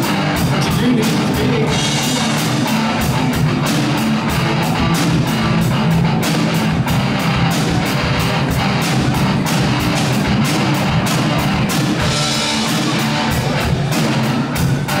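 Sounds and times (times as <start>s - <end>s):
drum kit: 0.0s - 15.0s
electric guitar: 0.0s - 15.0s.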